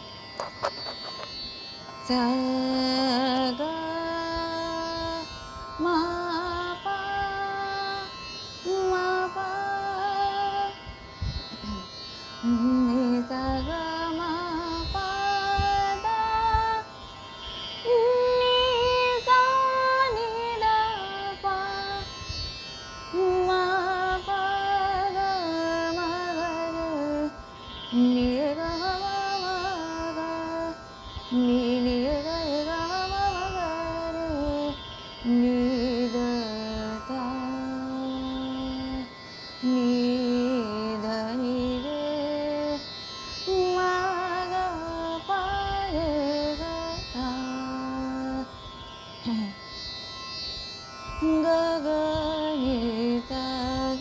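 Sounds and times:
woman singing classical vocals: 0.0s - 10.9s, 11.5s - 17.0s, 17.8s - 22.2s, 23.1s - 49.6s, 51.1s - 54.0s
faint steady drone: 0.0s - 54.0s.

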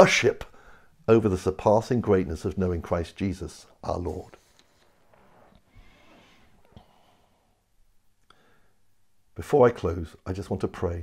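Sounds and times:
man breathing softly: 0.5s - 1.0s, 4.4s - 9.0s.

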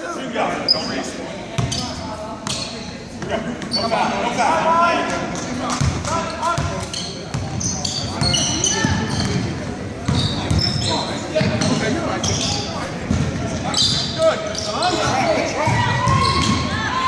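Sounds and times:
spectators calling and chattering: 0.0s - 17.0s
sneakers squeaking: 0.6s - 4.2s, 5.4s - 17.0s.

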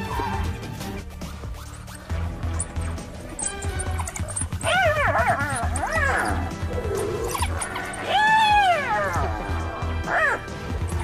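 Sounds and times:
shrill animal cries: 3.4s - 9.3s.

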